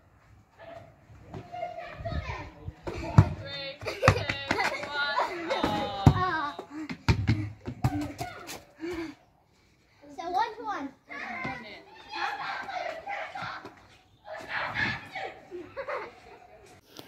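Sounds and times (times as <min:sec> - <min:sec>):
basketball bouncing: 0:05.6 - 0:08.3
children shouting: 0:11.1 - 0:15.9.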